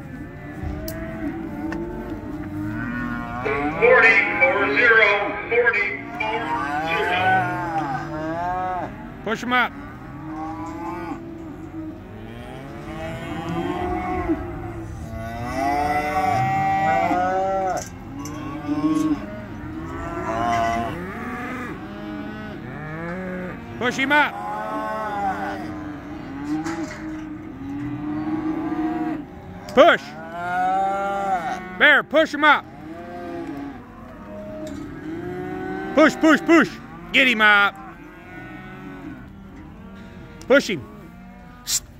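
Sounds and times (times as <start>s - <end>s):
cattle mooing: 0.0s - 41.9s.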